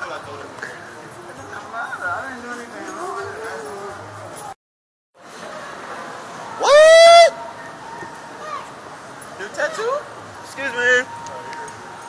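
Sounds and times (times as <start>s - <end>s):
background hubbub: 0.0s - 4.6s, 5.2s - 12.0s
person yelling high-pitched: 6.6s - 7.3s.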